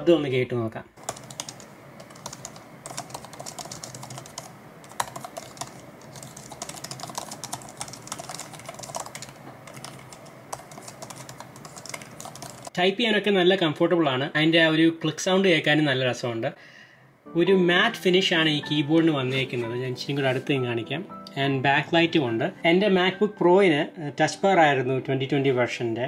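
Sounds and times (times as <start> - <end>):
laptop keyboard typing: 1.0 - 12.7.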